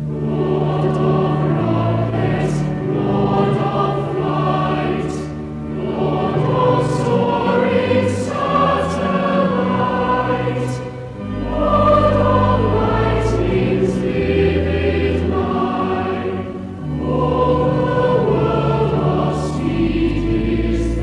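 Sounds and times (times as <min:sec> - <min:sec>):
choir singing a hymn: 0:00.0 - 0:21.0
organ low pedal notes: 0:00.0 - 0:21.0.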